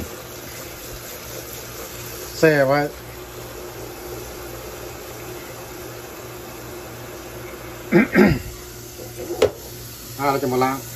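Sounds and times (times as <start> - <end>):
tap water running into sink: 9.2 - 9.7.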